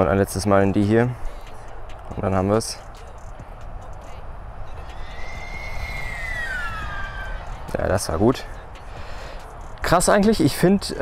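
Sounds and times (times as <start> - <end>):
steady low rumble: 0.0 - 11.0
drone motor and propeller whine: 4.7 - 7.8.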